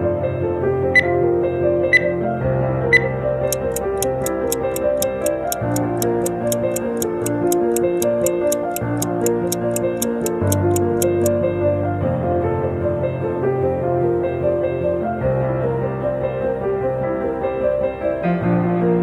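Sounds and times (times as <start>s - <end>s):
countdown beeps: 3.0s - 11.3s
stopwatch ticking: 3.5s - 11.3s.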